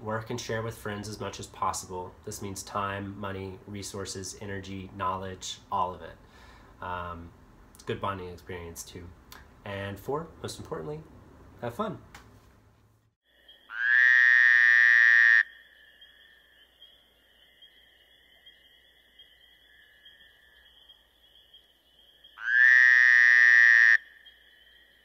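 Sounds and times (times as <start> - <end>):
frog-like trilling calls: 13.3 - 25.0.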